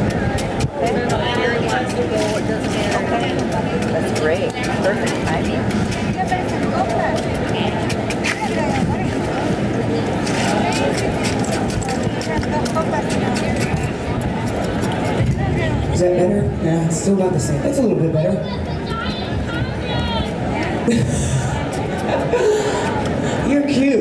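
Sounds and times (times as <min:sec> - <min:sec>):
crowd chatter: 0:00.0 - 0:24.0.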